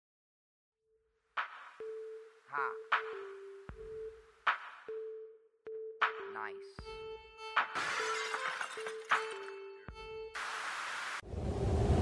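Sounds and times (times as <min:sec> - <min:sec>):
glass shattering effect: 0:07.8 - 0:09.7.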